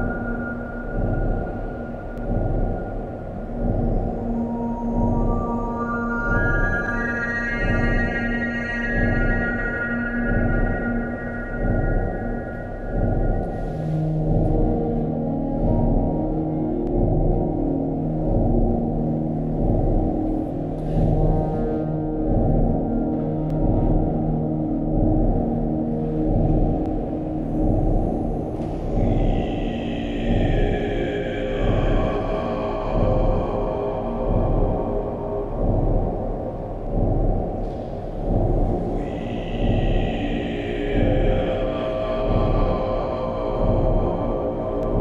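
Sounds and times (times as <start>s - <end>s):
ambient drone music: 0.0s - 45.0s
high sustained tone: 4.3s - 14.2s.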